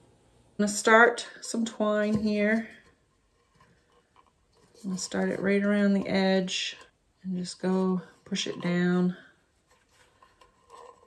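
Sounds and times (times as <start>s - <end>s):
woman speaking: 0.6s - 2.8s, 4.8s - 9.3s.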